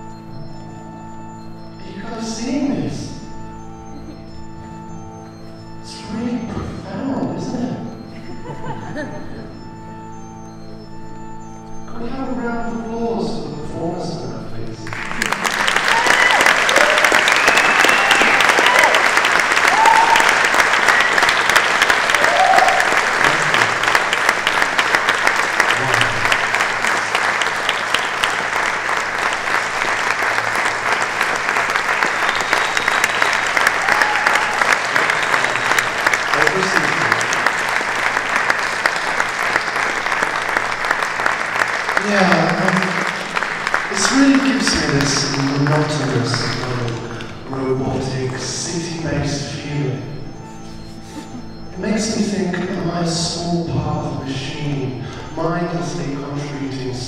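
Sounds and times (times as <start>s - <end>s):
audience clapping: 14.6s - 53.9s
people whooping: 15.3s - 23.8s, 32.2s - 37.2s.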